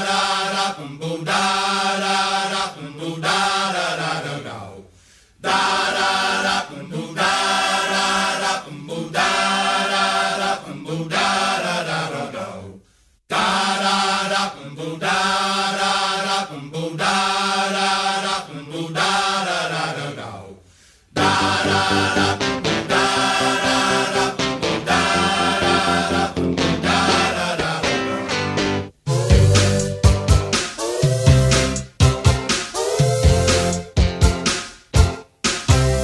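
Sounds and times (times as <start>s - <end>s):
voices singing sustained syllables: 0.0s - 4.7s, 5.4s - 12.7s, 13.3s - 20.3s, 21.2s - 31.9s, 32.6s - 33.8s.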